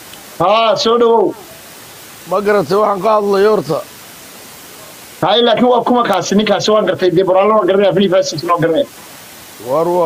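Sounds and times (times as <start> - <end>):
steady background hiss: 0.0 - 10.0
man speaking: 0.4 - 1.6, 2.2 - 3.9, 4.8 - 8.9, 9.6 - 10.0.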